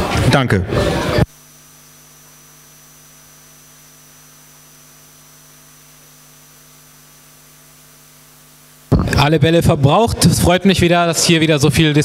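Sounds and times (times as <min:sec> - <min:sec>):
electrical mains hum: 0:00.0 - 0:12.0
faint high whine: 0:01.0 - 0:11.6.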